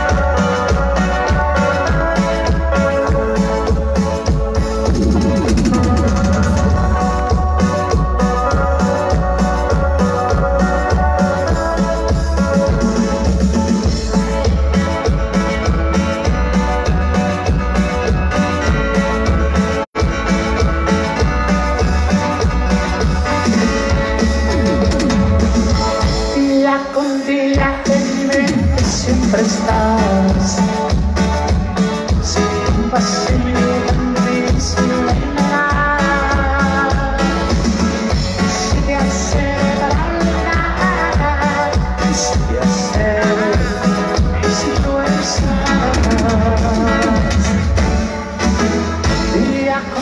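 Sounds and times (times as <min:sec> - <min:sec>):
electronic keyboards: 0:00.0 - 0:50.0
live band playing: 0:00.0 - 0:50.0.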